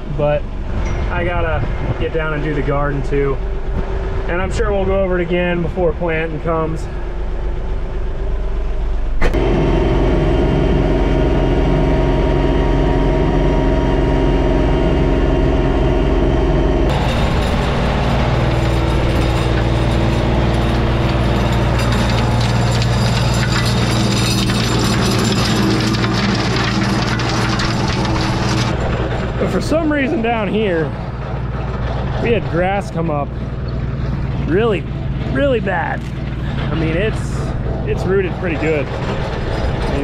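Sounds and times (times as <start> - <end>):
diesel tractor running under load: 0.0 - 40.0.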